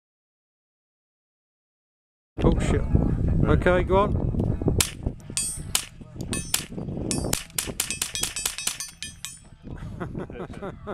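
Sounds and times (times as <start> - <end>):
sharp cracks and clicks: 4.8 - 9.4.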